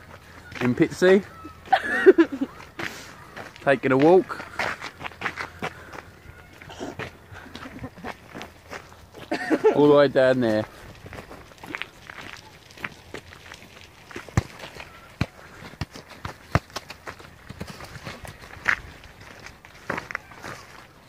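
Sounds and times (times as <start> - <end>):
footsteps on gravel: 0.0 - 21.0.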